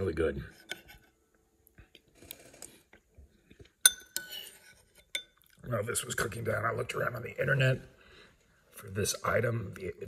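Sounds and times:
spoon stirring pasta: 2.0s - 6.2s
spoon clinking against bowl: 3.8s - 5.4s.

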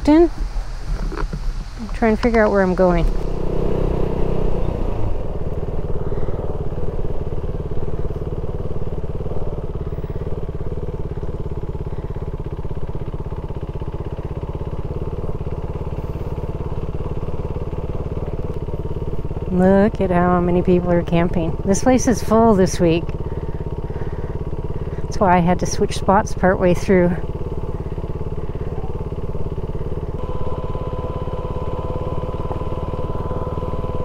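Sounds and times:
motorcycle engine pulling away: 2.1s - 34.0s.

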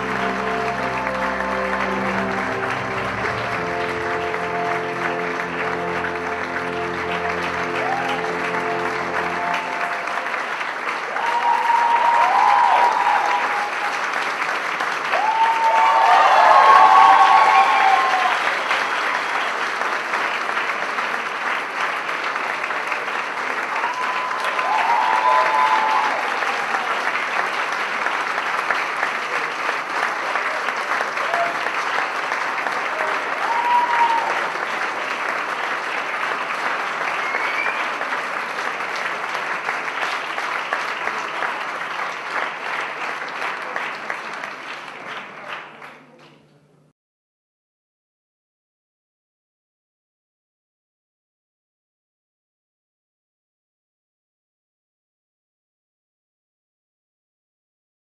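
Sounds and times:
voices cheering: 0.0s - 10.4s, 11.0s - 14.0s, 15.1s - 18.8s, 23.7s - 27.1s, 32.9s - 34.6s
music: 0.0s - 10.6s
audience applause: 0.0s - 46.2s.

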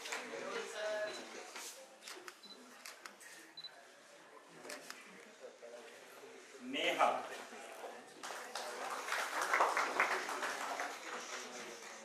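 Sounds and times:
faint voices murmuring: 0.0s - 12.0s.

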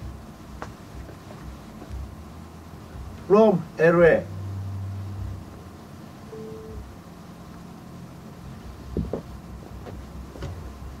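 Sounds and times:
low steady hum: 0.0s - 11.0s
brief pure tone: 6.3s - 6.9s.

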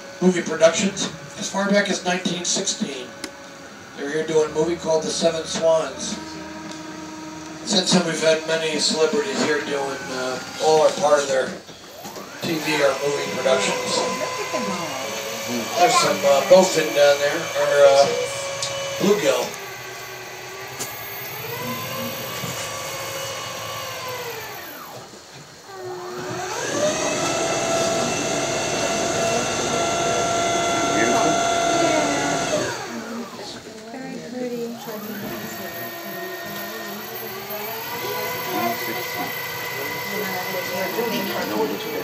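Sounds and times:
boat motor whining: 0.0s - 42.0s.

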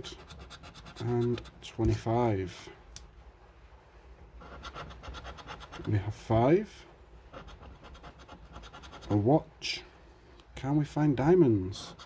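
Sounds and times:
scratchcard scraping: 0.1s - 2.0s, 4.4s - 6.0s, 7.4s - 9.2s.

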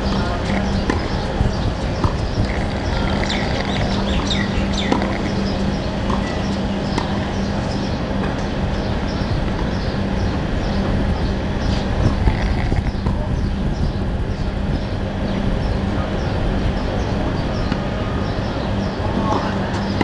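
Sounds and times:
birds chirping: 0.0s - 20.0s
indistinct crowd chatter: 0.0s - 20.0s.

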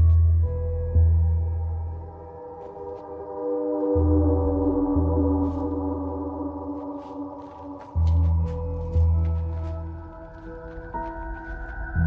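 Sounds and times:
deep bass drone: 0.0s - 2.4s, 4.0s - 6.9s.

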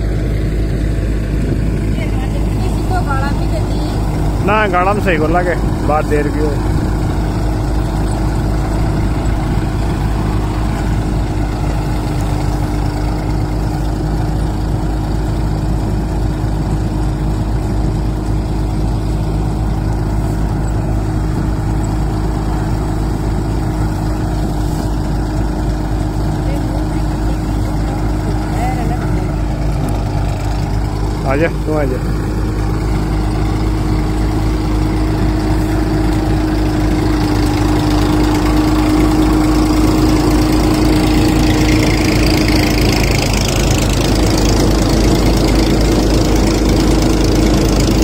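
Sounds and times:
thresher machine humming: 0.0s - 48.0s
tractor engine drone: 0.0s - 48.0s.

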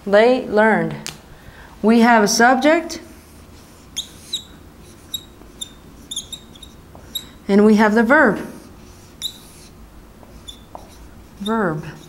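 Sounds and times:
marker scrape: 3.0s - 7.4s, 8.3s - 12.0s
marker squeaking on whiteboard: 3.2s - 7.4s, 8.5s - 12.0s.

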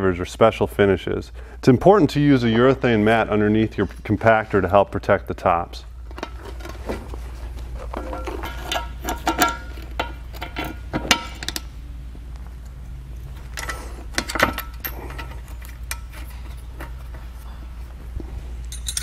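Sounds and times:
metal clinking and rattling: 7.8s - 11.7s, 13.3s - 17.3s, 18.6s - 19.0s.

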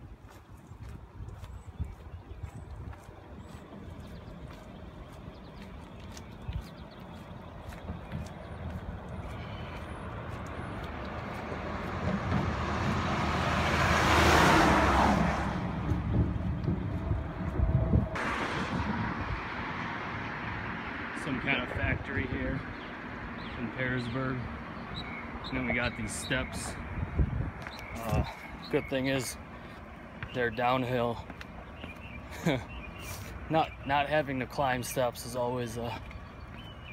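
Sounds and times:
highway traffic rushing: 0.0s - 36.9s
semi truck passing: 3.0s - 30.2s.

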